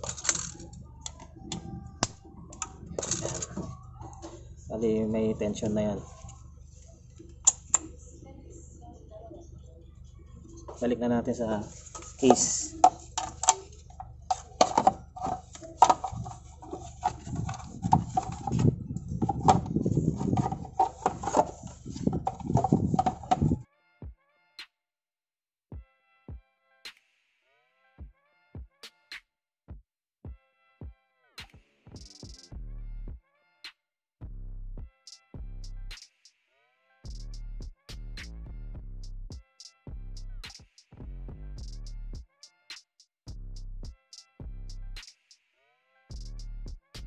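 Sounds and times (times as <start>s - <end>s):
plastic parts clattering and clicking: 0.0s - 4.2s, 11.7s - 23.6s.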